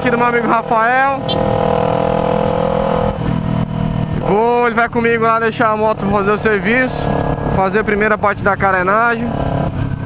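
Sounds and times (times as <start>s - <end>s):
loud motorcycle engine: 0.0s - 10.0s.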